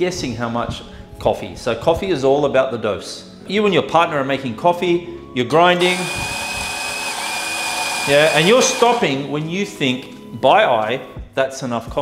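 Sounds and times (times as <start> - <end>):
electric coffee grinder whirring: 5.8 - 9.2.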